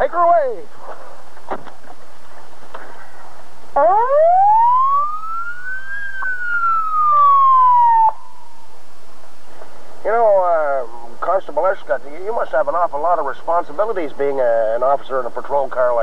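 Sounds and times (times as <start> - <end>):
police siren wail: 3.8 - 8.6.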